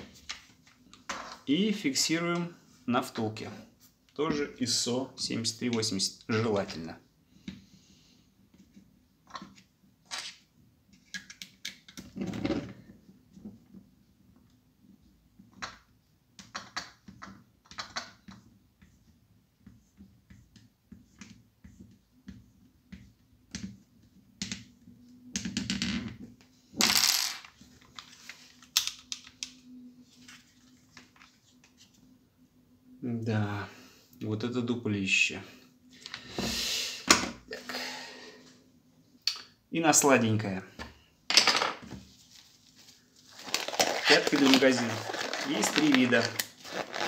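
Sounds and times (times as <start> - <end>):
plastic scraping: 43.3 - 47.0.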